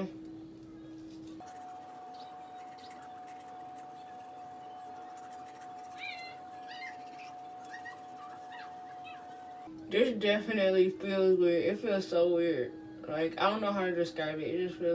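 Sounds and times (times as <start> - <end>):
toothbrush scrubbing teeth: 1.0 - 9.6
steady held tone: 1.4 - 9.7
squeaky chirps: 1.6 - 9.7.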